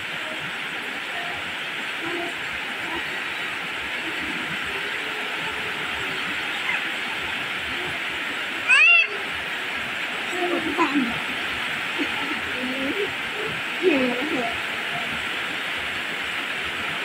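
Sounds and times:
rain falling on leaves: 0:00.0 - 0:17.0
high-pitched cry: 0:08.6 - 0:09.2.

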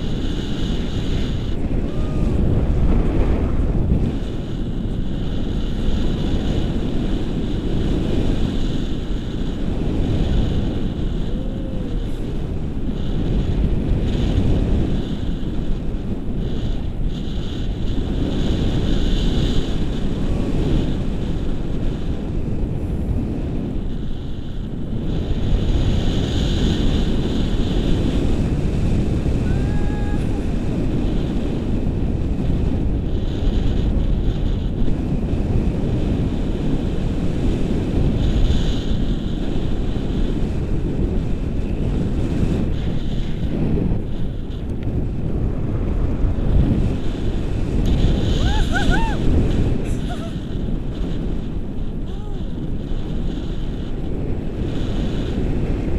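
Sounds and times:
wind buffeting microphone: 0:00.0 - 0:55.9.

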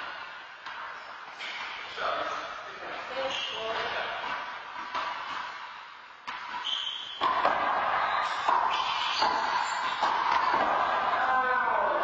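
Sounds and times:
ball bouncing on hard floor: 0:06.2 - 0:11.5.

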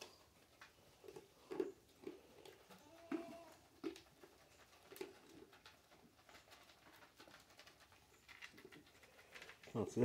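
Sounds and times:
goats feeding rustling: 0:00.0 - 0:10.0.

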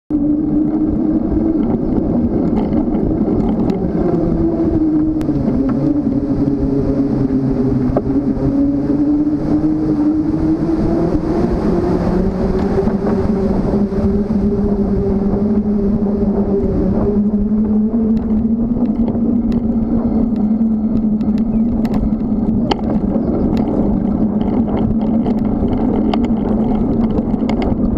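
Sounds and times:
bicycle riding wind rumble: 0:00.1 - 0:27.9
hum drifting in pitch: 0:00.1 - 0:27.9.

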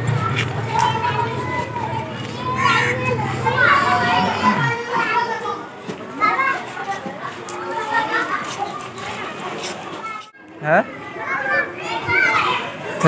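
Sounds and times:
children chattering and calling out: 0:00.0 - 0:13.0
people talking: 0:00.0 - 0:13.0.

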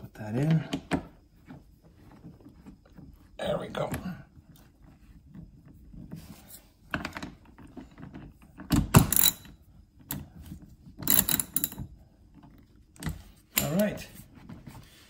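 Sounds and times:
ratchet wrench clicking: 0:09.0 - 0:09.5, 0:11.0 - 0:11.8, 0:13.5 - 0:13.9.

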